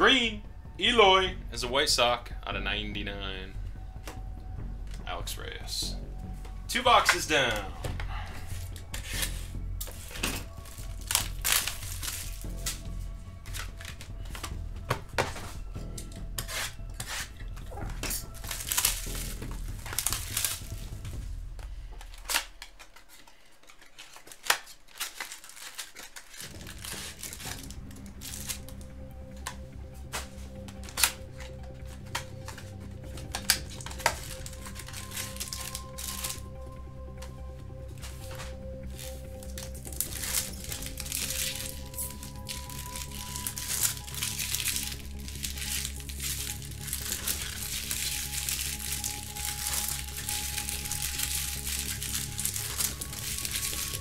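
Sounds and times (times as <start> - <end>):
background music: 0.0 - 54.0
plastic packaging rustling: 6.7 - 54.0.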